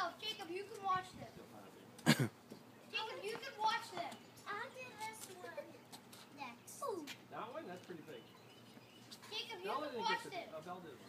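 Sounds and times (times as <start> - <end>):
person coughing: 2.1 - 2.3.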